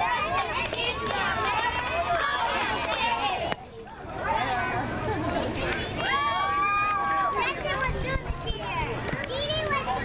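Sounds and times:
girls chanting a cheer: 0.0 - 3.6.

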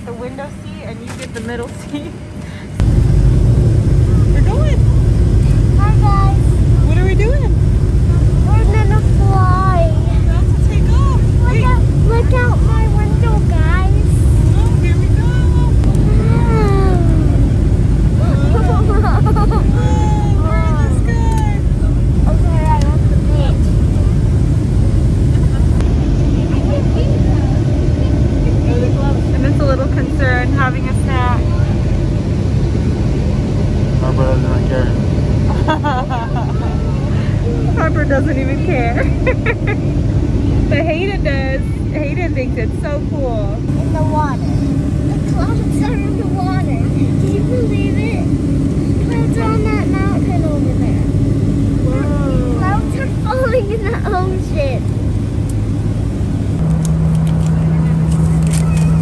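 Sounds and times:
jet engine and airflow roar: 0.0 - 59.0
indistinct voices: 3.8 - 54.9.

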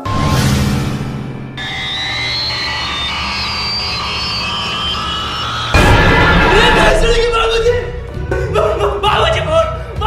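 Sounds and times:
low drone: 0.1 - 8.1
high thin synthesized tones: 1.6 - 7.2.

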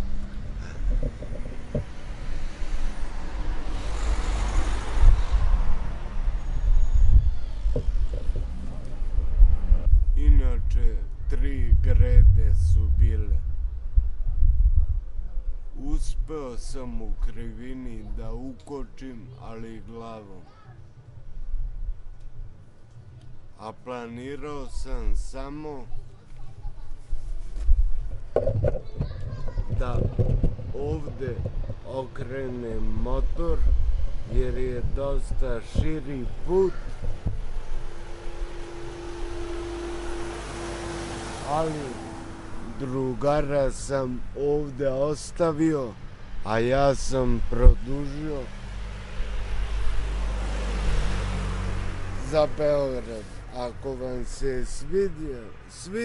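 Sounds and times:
car passing: 0.0 - 10.7, 27.6 - 56.0
wind rumble on microphone: 0.0 - 16.4, 27.0 - 40.6, 47.0 - 48.0
irregular knocks: 0.8 - 2.0.

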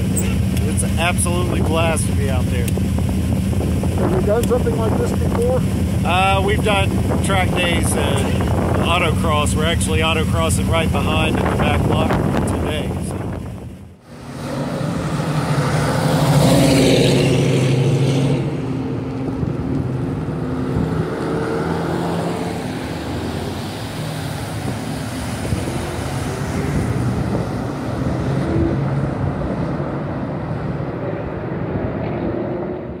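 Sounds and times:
car engines running: 0.0 - 33.0
vehicle passing close: 14.0 - 33.0.

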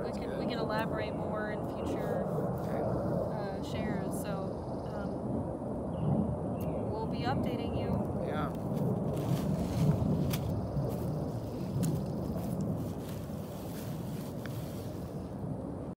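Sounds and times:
wind rumbling on microphone: 0.0 - 16.0
plastic bags rustling: 8.6 - 15.2.

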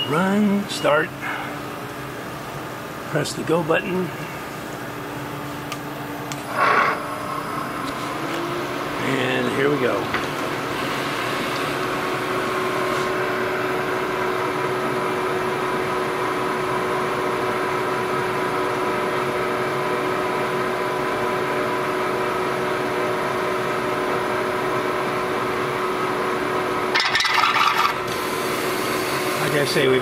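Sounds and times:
milling machine spindle whine: 6.4 - 17.2.

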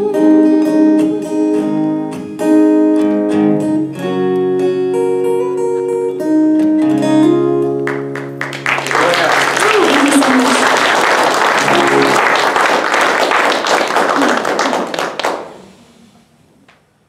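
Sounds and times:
audience applauding: 7.8 - 16.0
acoustic guitar chord: 10.5 - 12.7.

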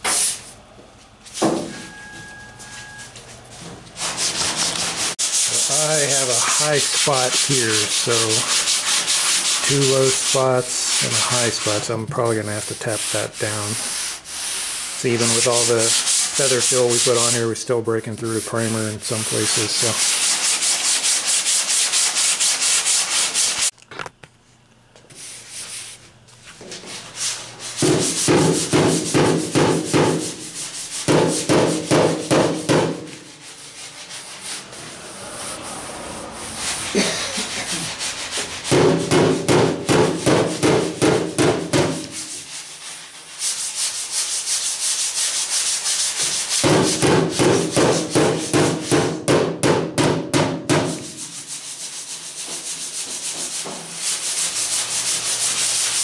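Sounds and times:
sandpaper rasping: 4.0 - 17.6, 18.2 - 23.7, 26.8 - 49.1, 50.8 - 56.0.

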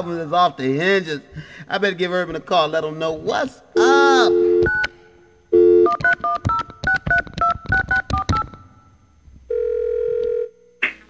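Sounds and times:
telephone ringing tone: 3.8 - 4.9, 5.5 - 8.7, 9.5 - 10.7
touch-tone dialling beeps: 5.6 - 8.6.

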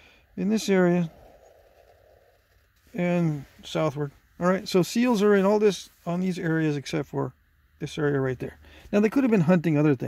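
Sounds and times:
man talking: 0.4 - 1.2, 2.9 - 10.0.

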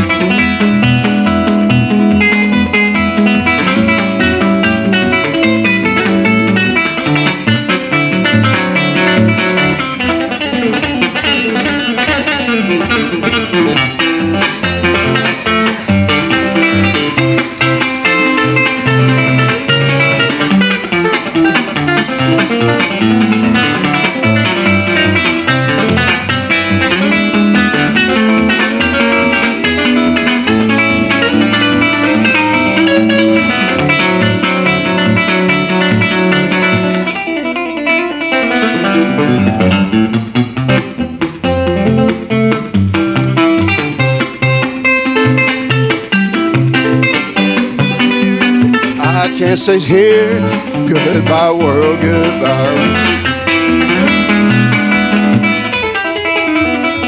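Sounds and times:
fingerstyle electric guitar: 0.0 - 57.0.

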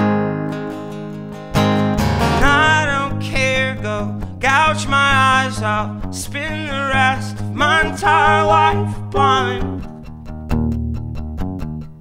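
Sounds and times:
acoustic guitar strumming: 0.0 - 12.0
man singing long wavering notes: 2.4 - 9.8.

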